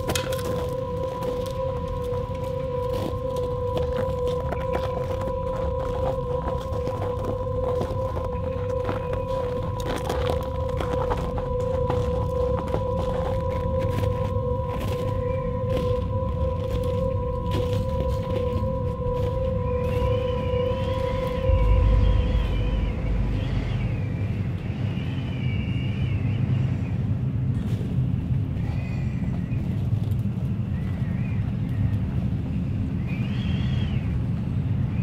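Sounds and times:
deep swell: 0.0s - 28.7s
low rumbling drone: 0.0s - 35.0s
steady held tone: 20.3s - 25.0s.

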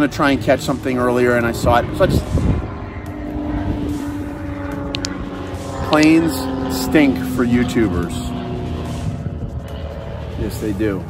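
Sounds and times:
airplane flying overhead: 0.0s - 11.0s.

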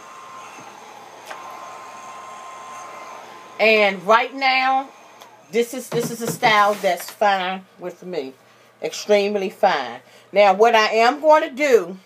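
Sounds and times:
hair dryer running: 0.0s - 7.4s.

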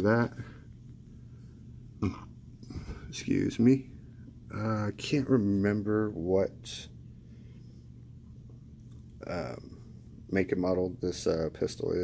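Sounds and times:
man coughing: 2.0s - 3.0s
throat clearing: 2.0s - 3.1s.

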